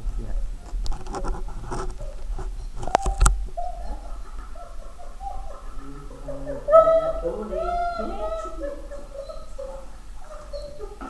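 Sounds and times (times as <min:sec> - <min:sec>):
dog whining: 0:01.9 - 0:11.0.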